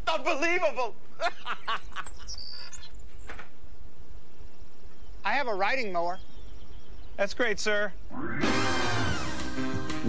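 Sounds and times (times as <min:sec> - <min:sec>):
outdoor ambience: 0:00.0 - 0:10.0
high bird chirp: 0:01.6 - 0:08.5.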